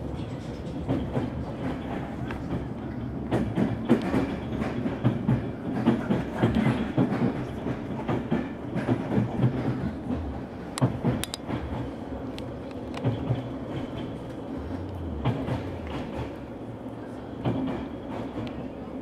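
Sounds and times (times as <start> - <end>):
wheels clattering over rail joints: 0.0 - 16.7
train rumble on track: 0.0 - 19.0.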